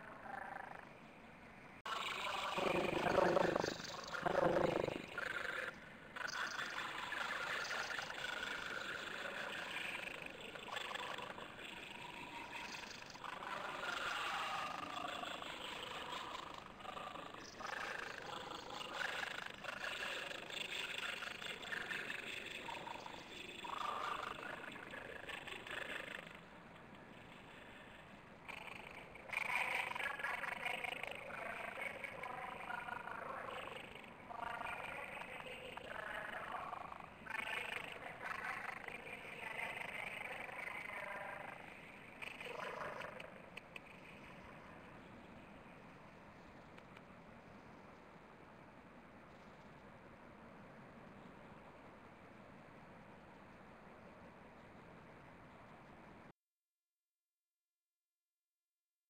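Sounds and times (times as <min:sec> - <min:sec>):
garbled warbling voice: 0:01.9 - 0:05.3.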